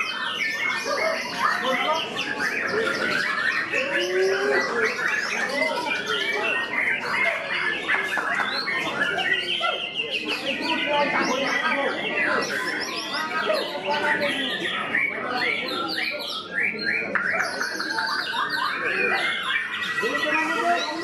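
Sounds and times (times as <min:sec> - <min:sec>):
birds singing whistles and trills: 0:00.0 - 0:21.0.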